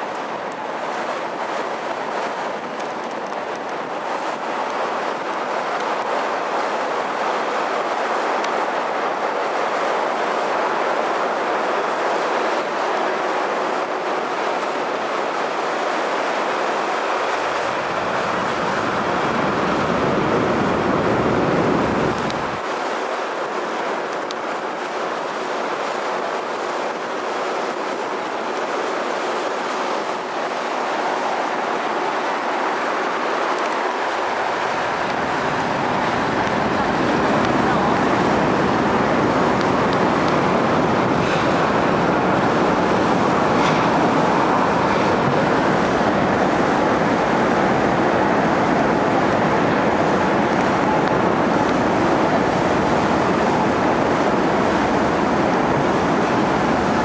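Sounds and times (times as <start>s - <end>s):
ship engine and rushing water: 0.0s - 57.0s.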